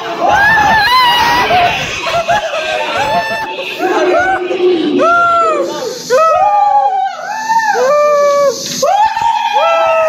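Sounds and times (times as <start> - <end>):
overlapping drawn-out howls: 0.0 - 7.8.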